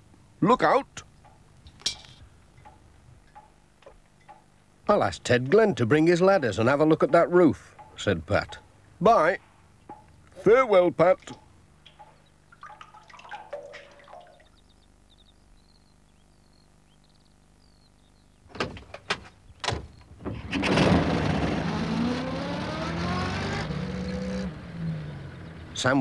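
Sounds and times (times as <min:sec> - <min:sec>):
van engine pulling away: 0:20.2 - 0:26.0.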